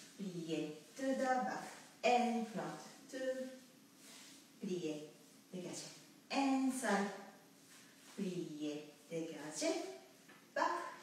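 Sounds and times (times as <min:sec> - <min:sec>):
woman speaking: 0:00.0 - 0:03.6, 0:04.6 - 0:07.3, 0:08.2 - 0:11.0.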